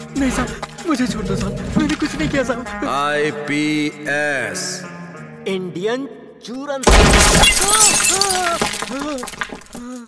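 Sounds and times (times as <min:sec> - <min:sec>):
glass shattering: 0:06.8 - 0:10.0.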